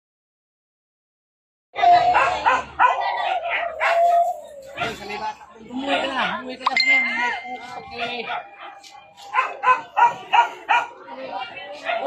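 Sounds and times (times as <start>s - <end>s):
dog barking: 1.8s - 5.0s, 8.2s - 11.1s, 11.8s - 12.0s
steady high tone: 6.7s - 8.2s.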